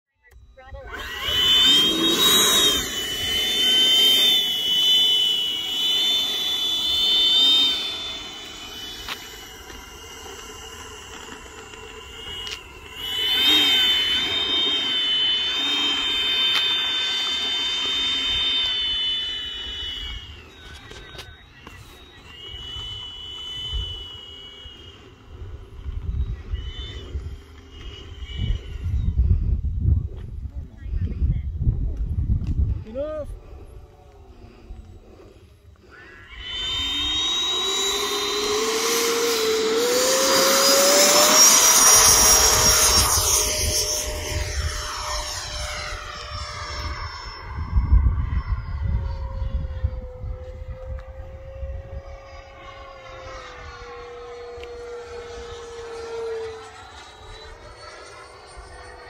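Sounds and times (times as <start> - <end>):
electric ducted fan whining: 0.3 - 59.0
low rumble: 7.5 - 55.8.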